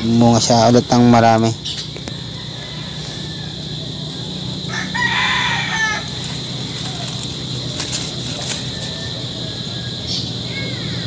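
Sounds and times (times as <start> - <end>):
low background hum: 0.0 - 11.0
rooster crowing: 2.0 - 11.0.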